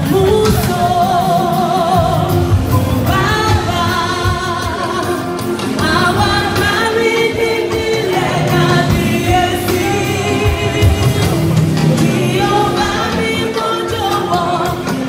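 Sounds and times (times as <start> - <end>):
church choir singing: 0.8 - 15.0.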